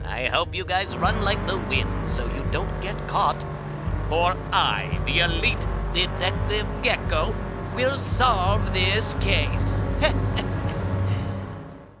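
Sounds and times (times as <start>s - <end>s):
cartoon race car engine: 0.0s - 12.0s.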